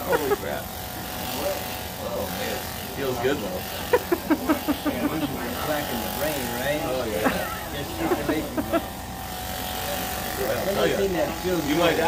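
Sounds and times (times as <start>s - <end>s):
electric massager buzzing: 0.0s - 12.0s.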